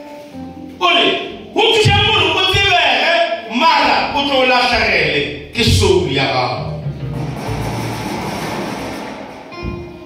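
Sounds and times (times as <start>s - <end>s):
electronic keyboard music: 0.0s - 4.3s, 6.4s - 10.0s
person preaching: 0.8s - 6.6s
low thump: 7.0s - 10.0s.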